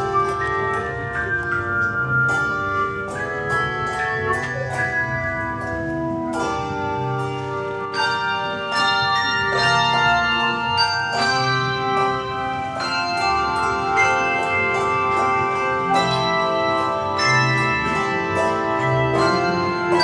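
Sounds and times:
handbell choir playing chords: 0.0s - 20.0s.

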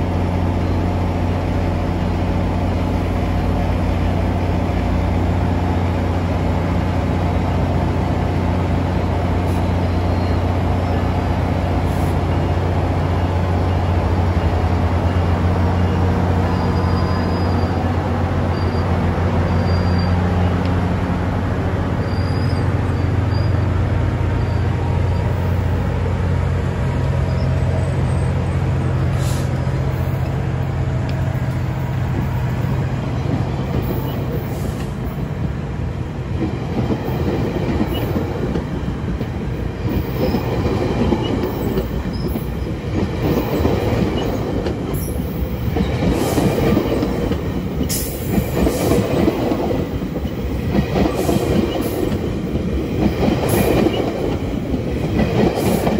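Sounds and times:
diesel locomotive engine humming: 0.0s - 55.9s.

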